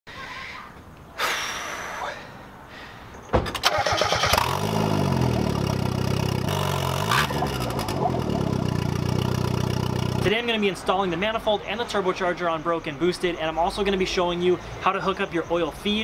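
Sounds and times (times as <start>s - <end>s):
car engine cranking: 3.4s - 10.3s
car engine idling and revving: 4.0s - 10.4s.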